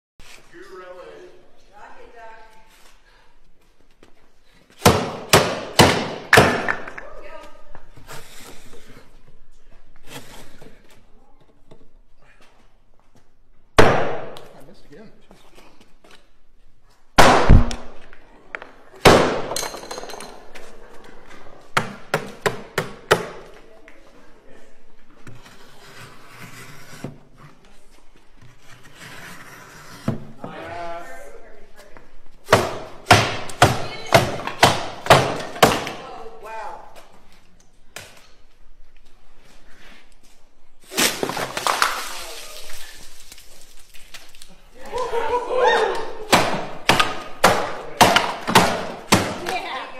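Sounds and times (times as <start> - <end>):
water spattering on wooden table: 40.9 - 44.5.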